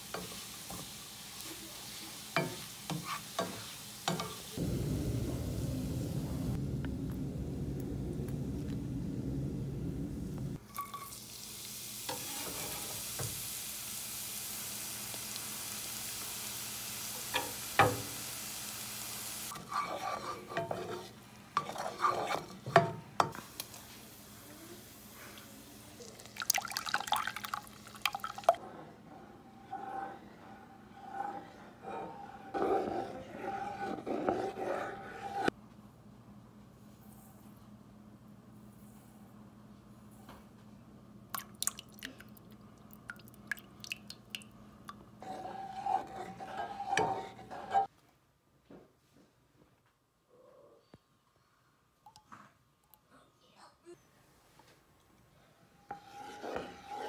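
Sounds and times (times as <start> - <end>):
onions sizzling in oil: 0.0 - 6.6, 10.8 - 19.6
sugar pouring with faint hiss: 25.8 - 28.6
drips and splashes into liquid: 26.0 - 28.6, 41.3 - 45.0.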